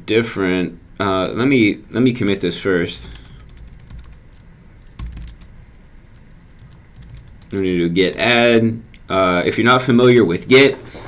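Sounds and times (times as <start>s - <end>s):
typing on computer keyboard: 2.8s - 8.2s.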